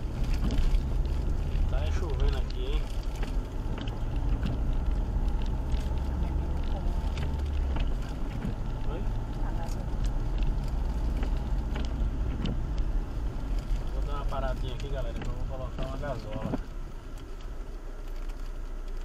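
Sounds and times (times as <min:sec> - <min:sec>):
car engine and road rumble: 0:00.0 - 0:19.0
rain ticking on windshield: 0:00.0 - 0:19.0.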